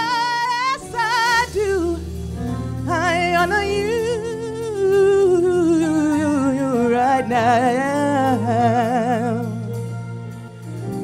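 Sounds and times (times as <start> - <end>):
woman singing gospel song: 0.0 - 9.8
sustained instrumental chords: 0.0 - 11.0.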